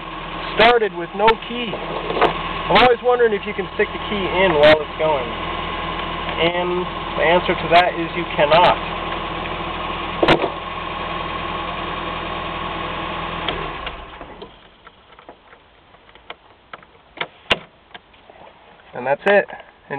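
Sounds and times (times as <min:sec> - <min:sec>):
truck engine idling: 0:00.0 - 0:18.3.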